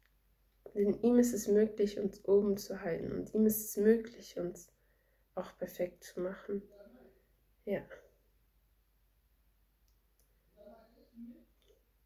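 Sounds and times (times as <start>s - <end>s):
woman drawing breath: 4.8s - 5.3s.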